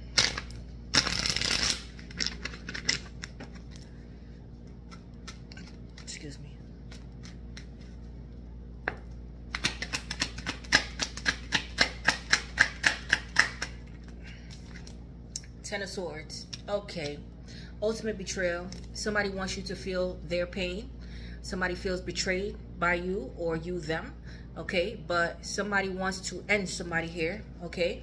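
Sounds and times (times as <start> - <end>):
cards riffle shuffling: 0.1 - 3.9, 4.7 - 8.2.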